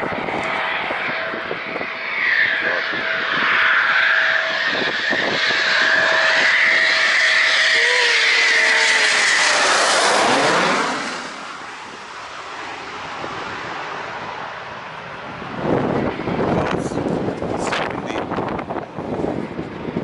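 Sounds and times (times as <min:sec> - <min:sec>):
jet engine whine: 0:00.0 - 0:20.0
jet engines flying overhead: 0:00.0 - 0:20.0.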